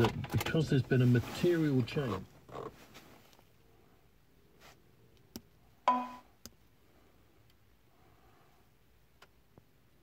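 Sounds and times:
button clicks: 0:05.9 - 0:06.2
short electronic chime: 0:05.9 - 0:06.2.

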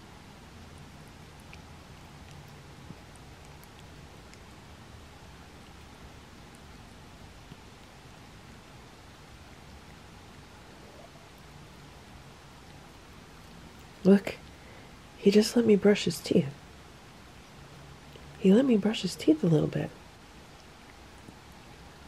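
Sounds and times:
room hum and hiss: 0:00.0 - 0:22.0
cat licking a toothbrush: 0:00.5 - 0:10.6.

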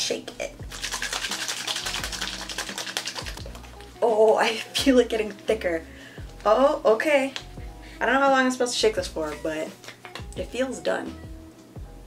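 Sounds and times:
background music: 0:00.0 - 0:12.0
plastic cup shaken sloshing: 0:00.6 - 0:04.8.

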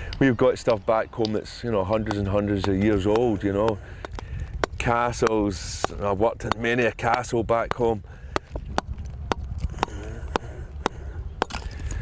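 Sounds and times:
low background rumble: 0:00.0 - 0:12.0
hammer striking chisel on stone: 0:02.0 - 0:11.6.

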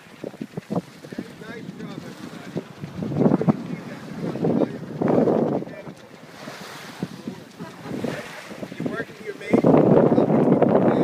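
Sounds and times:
water rushing along hull: 0:00.0 - 0:11.0
wind buffeting microphone: 0:00.0 - 0:11.0.

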